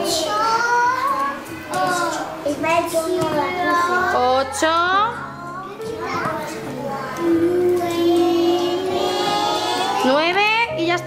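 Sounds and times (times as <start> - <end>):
young children chattering: 0.0 - 10.2.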